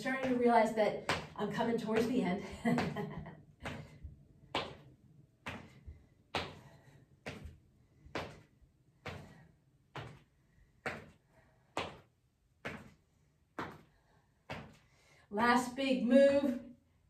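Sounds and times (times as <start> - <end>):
marching footfalls on rubber floor: 0.0 - 14.8.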